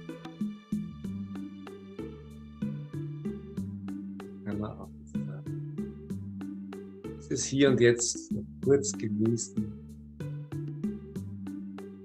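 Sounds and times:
calm instrumental music: 0:00.0 - 0:12.0.

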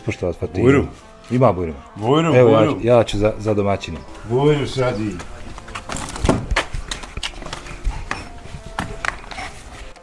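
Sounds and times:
footsteps on concrete steps: 0:03.2 - 0:10.0.

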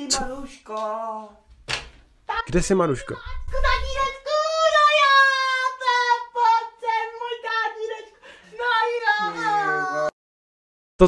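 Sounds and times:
high-pitched voice singing: 0:00.0 - 0:01.4, 0:03.1 - 0:06.4.

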